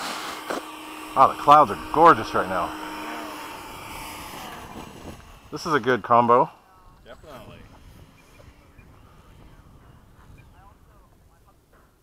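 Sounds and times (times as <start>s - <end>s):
model jet fan rushing hiss: 0.0s - 6.3s.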